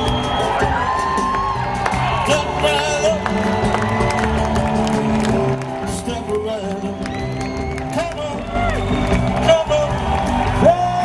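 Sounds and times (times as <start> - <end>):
crowd whooping: 0.0 - 11.0
live band playing instrumental: 0.0 - 11.0.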